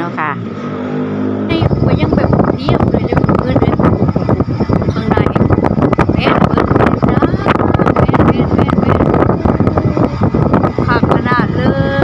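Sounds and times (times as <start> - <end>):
vehicle engine droning: 0.0 - 12.0
wind buffeting microphone: 0.4 - 12.0.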